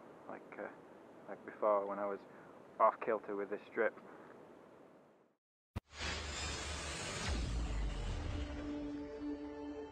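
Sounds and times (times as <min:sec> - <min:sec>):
faint outdoor background: 0:00.0 - 0:05.4.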